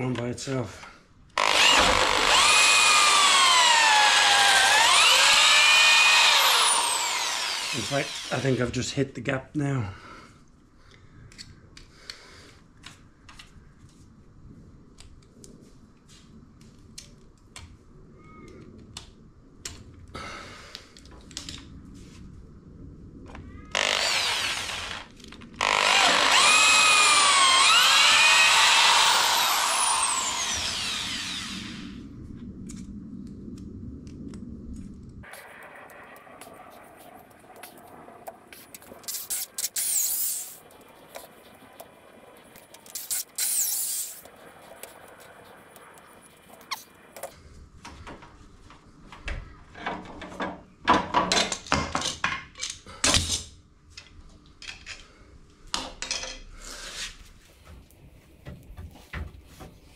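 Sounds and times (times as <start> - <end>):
electric drill boring into wood: 1.4 - 8.6, 23.7 - 32.0, 39.1 - 40.6, 42.8 - 44.3.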